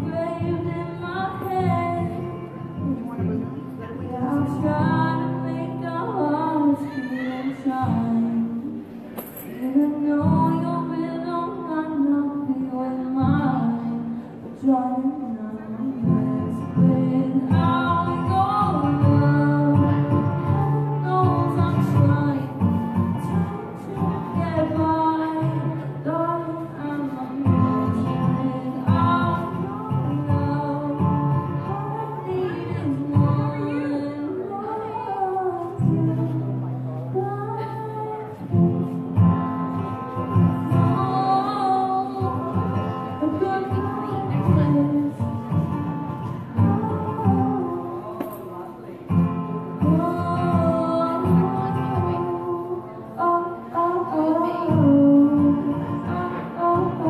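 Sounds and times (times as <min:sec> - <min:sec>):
woman singing: 0:00.0 - 0:08.9, 0:09.6 - 0:57.0
acoustic guitar: 0:00.0 - 0:57.0.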